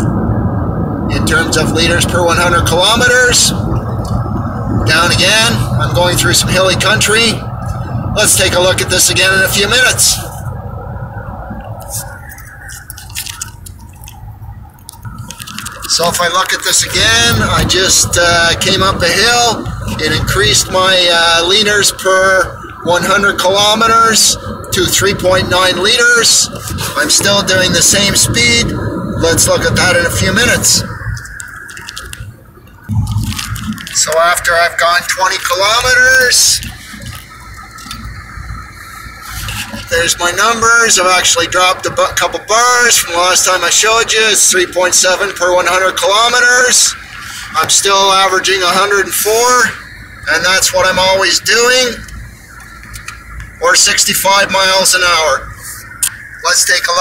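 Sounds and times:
road and tyre rumble in car: 0.0s - 57.0s.

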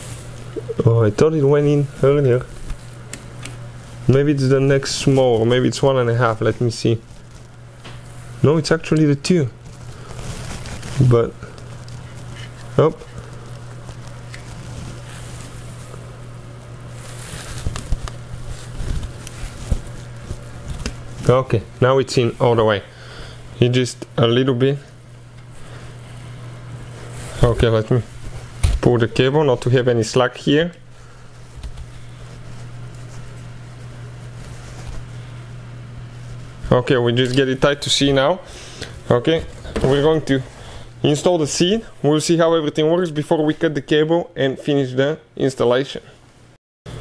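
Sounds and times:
steady low hum: 0.0s - 47.0s
cable clicks and rustles: 17.0s - 21.5s, 31.4s - 33.5s.

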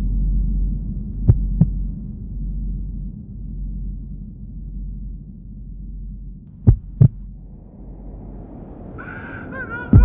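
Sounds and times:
low droning hum: 0.0s - 10.0s
heavy thumps: 1.2s - 2.0s, 6.5s - 7.3s.

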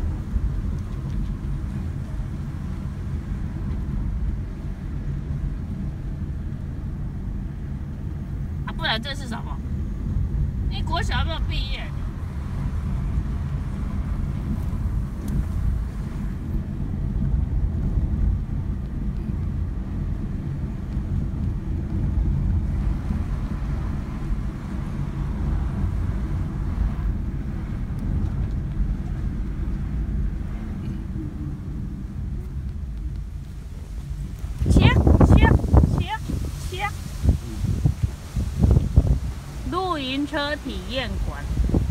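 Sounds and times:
car engine and tyres rumbling: 0.0s - 41.9s.

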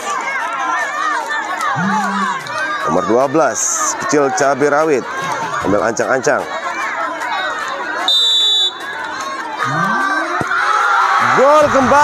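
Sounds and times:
crowd chattering: 0.0s - 12.0s
referee's whistle blast: 8.1s - 8.8s.

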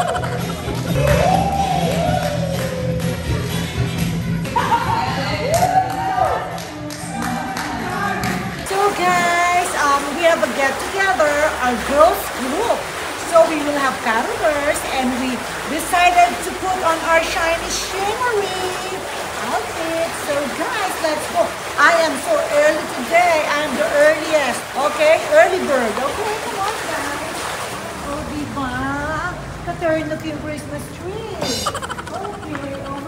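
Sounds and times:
fountain splashing: 0.0s - 3.7s, 7.9s - 33.0s
woman talking: 8.7s - 27.4s, 28.0s - 33.0s.

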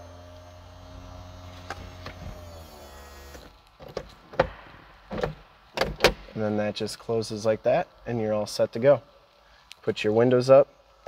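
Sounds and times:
electric motor humming: 0.0s - 3.5s
sharp clicks and knocks: 3.8s - 6.4s.

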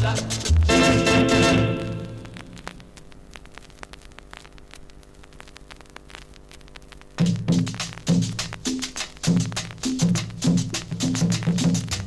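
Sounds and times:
song: 0.0s - 2.6s
faint hiss: 0.0s - 12.0s
vinyl crackles and pops: 0.0s - 12.0s.

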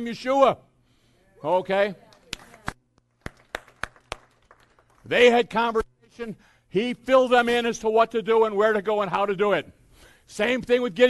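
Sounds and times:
sharp hand claps: 2.1s - 5.1s.

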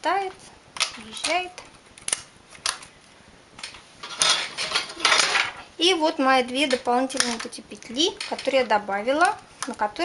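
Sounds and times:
metal tool clicking on needles: 6.5s - 10.0s.

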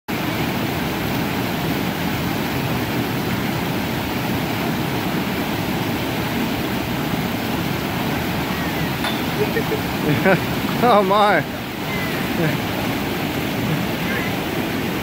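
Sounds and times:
stream rushing over boulders: 0.1s - 15.0s.

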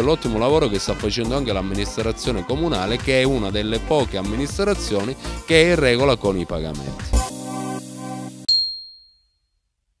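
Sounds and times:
background music held chord: 0.0s - 8.5s
bright high-pitched ding: 8.5s - 9.4s.

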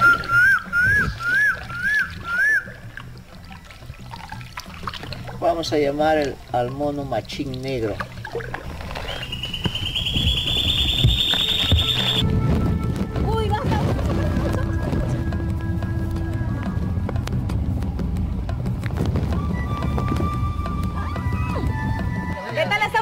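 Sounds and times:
warbling whistled call: 0.0s - 2.8s, 8.8s - 12.2s
background music with held tones: 0.0s - 9.6s, 11.3s - 23.0s.

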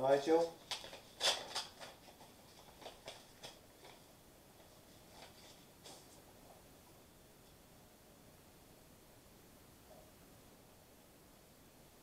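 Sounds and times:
paper envelope tearing and rustling: 0.6s - 4.1s.

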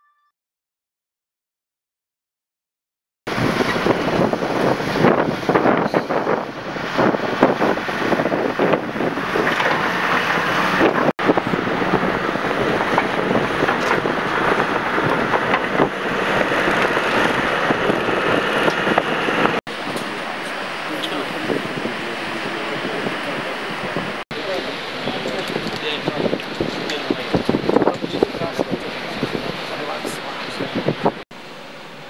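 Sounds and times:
wind buffeting microphone: 3.3s - 31.2s
diesel engine running: 3.3s - 32.0s.

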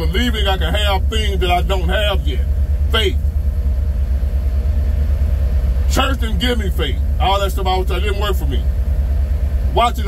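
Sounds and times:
car engine rumble and road noise: 0.0s - 10.0s
faint steady hum: 0.0s - 10.0s.

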